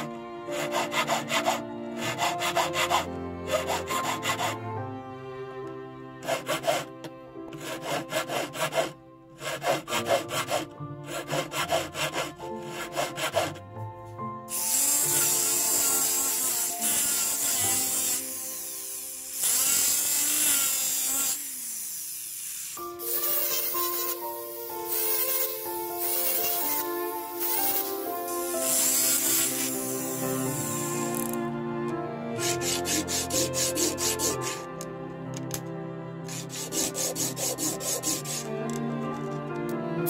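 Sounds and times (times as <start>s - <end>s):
background music: 0.0s - 21.1s, 22.8s - 40.0s
rotary sanding drum grinding metal: 0.6s - 4.6s, 6.2s - 6.9s, 7.6s - 13.6s, 14.6s - 24.2s, 24.8s - 31.3s, 32.4s - 34.7s, 36.3s - 38.5s.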